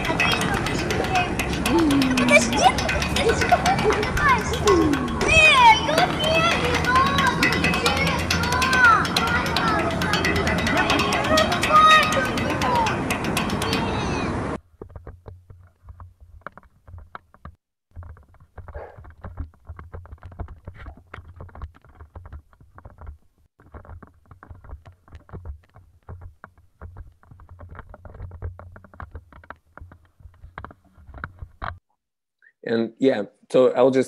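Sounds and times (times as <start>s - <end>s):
muffled knocks and clatter: 14.6s - 31.8s.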